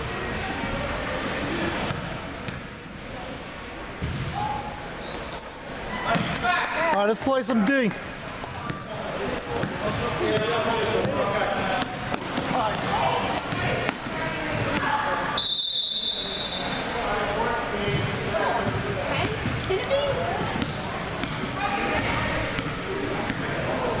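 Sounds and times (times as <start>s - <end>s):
people talking in echoing hall: 0.0s - 24.0s
referee's whistle: 15.2s - 16.8s.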